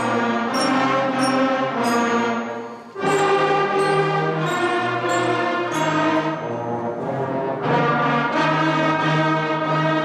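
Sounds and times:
concert band playing held notes: 0.0 - 8.4.

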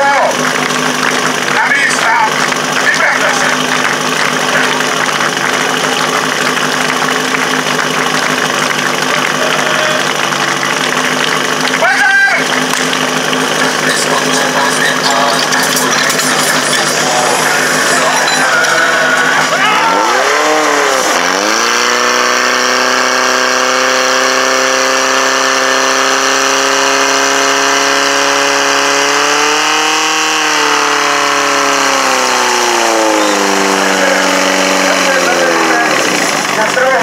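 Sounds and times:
fire pump engine running: 0.0 - 37.0.

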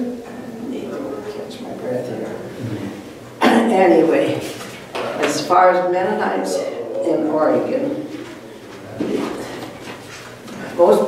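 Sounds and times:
person humming: 6.4 - 7.6.

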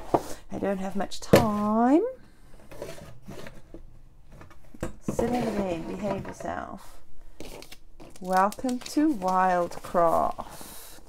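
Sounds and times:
cardboard box rustling and scraping: 5.1 - 6.4.

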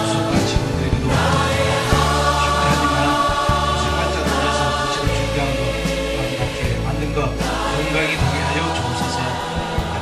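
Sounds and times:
musical accompaniment: 0.0 - 10.0
other voices singing: 0.0 - 10.0.

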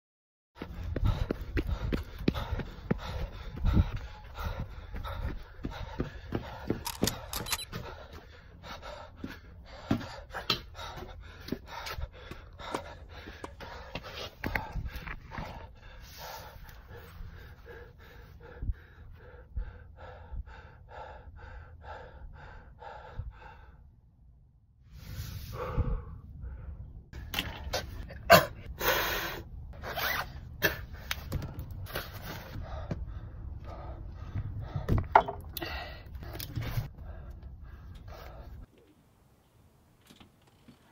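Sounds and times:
man panting hard: 0.6 - 24.0, 25.3 - 27.1, 28.3 - 29.7, 30.4 - 38.7.

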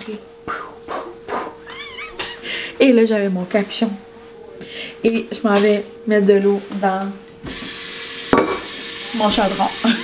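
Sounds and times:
water running into a metal pot: 7.5 - 10.0.

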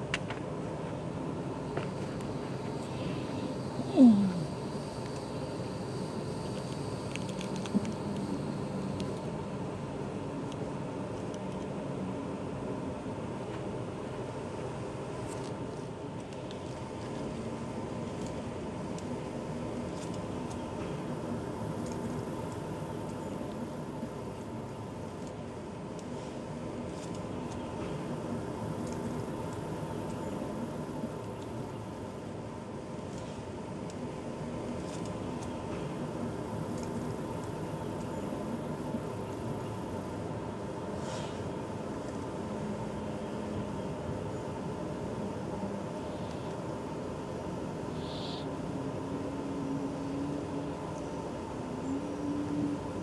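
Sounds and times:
low even hum: 0.0 - 53.0.

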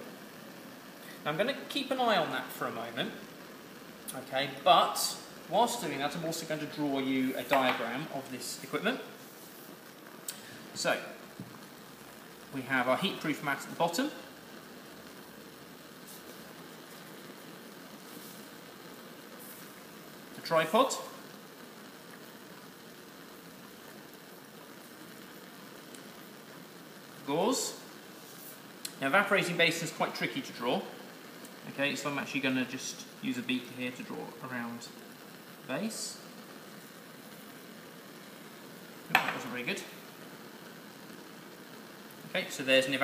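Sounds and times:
bunsen burner flame rushing: 0.0 - 43.0
water beginning to boil: 0.0 - 43.0.

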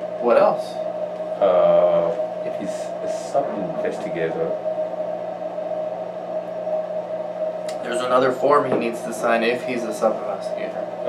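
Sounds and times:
two-tone room hum: 0.0 - 11.0
man speaking: 1.4 - 4.6.

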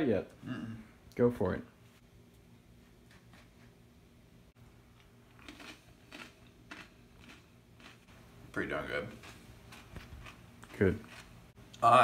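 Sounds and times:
tortilla chip crunching: 5.3 - 8.0.

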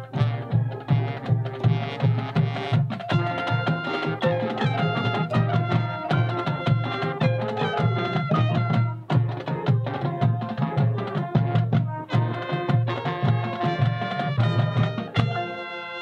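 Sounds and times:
pulsing drum beat: 0.0 - 15.7
marching band wind instruments: 0.0 - 16.0.

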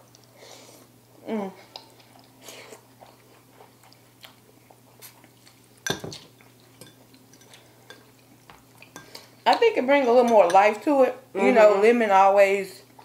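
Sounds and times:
forks clinking on ceramic bowls: 5.8 - 6.2, 9.0 - 10.8.

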